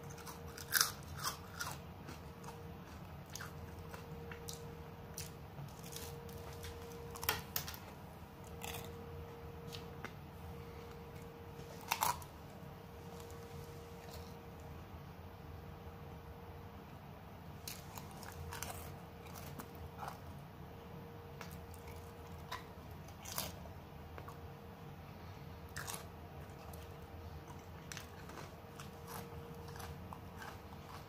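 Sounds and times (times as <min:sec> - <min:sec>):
crunching waffle cone: 0:00.0 - 0:09.0, 0:11.6 - 0:12.4, 0:17.6 - 0:20.4, 0:21.4 - 0:23.6, 0:25.6 - 0:31.0.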